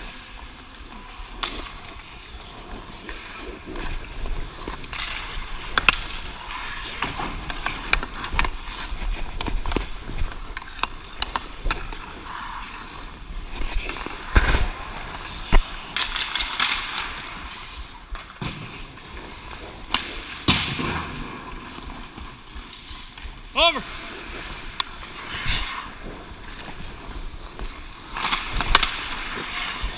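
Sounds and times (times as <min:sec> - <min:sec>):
skate blades scraping ice: 0:00.0 - 0:29.9
hockey stick clacking puck: 0:01.0 - 0:29.9.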